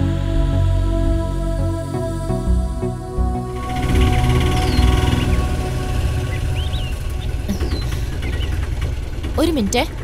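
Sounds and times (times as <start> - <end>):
auto-rickshaw engine running: 0.0 - 10.0
background music: 0.0 - 10.0
bird chirps: 4.4 - 9.0.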